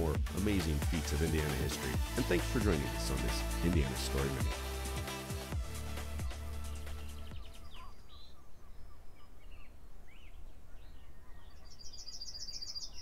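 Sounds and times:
low outdoor background: 0.0s - 13.0s
small birds chirping: 0.6s - 13.0s.

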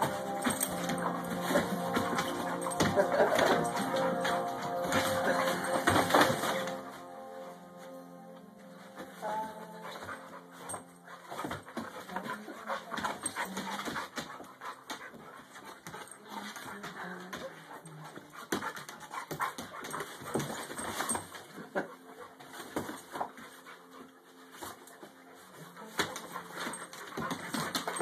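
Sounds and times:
dogs vocalizing: 0.0s - 6.8s.

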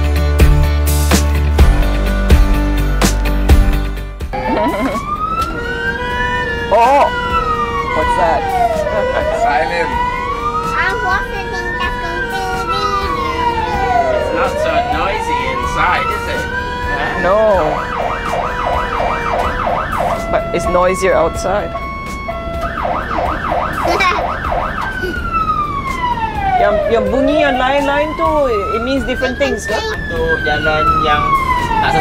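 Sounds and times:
fire truck siren: 4.3s - 32.0s.

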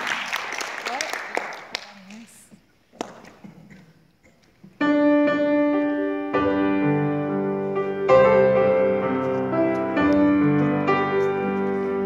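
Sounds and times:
grand piano chords: 4.8s - 12.0s.

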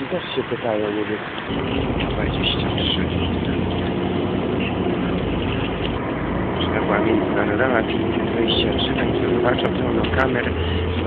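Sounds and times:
bus engine drone: 0.0s - 11.0s
road noise: 0.0s - 11.0s.

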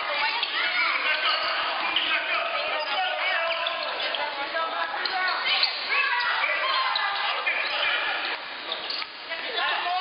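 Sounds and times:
voices shouting: 0.2s - 8.3s.

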